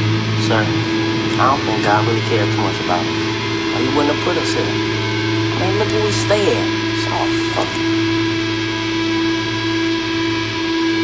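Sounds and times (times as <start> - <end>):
held musical drone tone: 0.0 - 11.0
low hum: 0.0 - 11.0.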